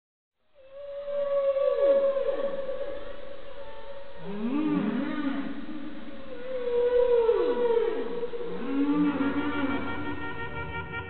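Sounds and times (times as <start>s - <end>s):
whale song: 0.6s - 11.0s.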